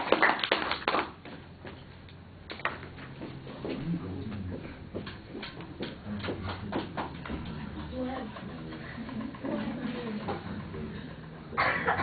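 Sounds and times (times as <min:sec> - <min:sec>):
murmuring voices: 0:03.5 - 0:12.0.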